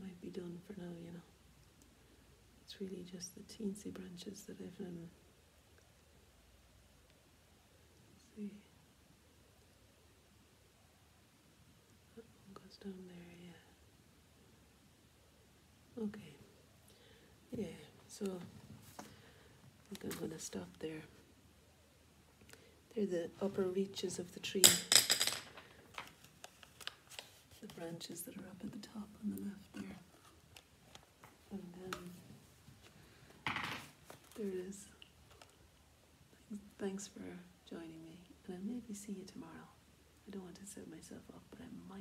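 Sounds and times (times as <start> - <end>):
sketchbook rustling and scraping: 18.2 - 19.1, 19.9 - 20.8, 26.0 - 33.0, 33.8 - 34.5.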